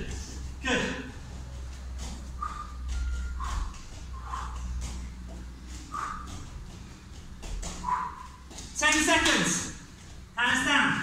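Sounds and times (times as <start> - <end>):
hands and feet thudding on mats: 0.0 - 10.4
steady low hum: 0.0 - 11.0.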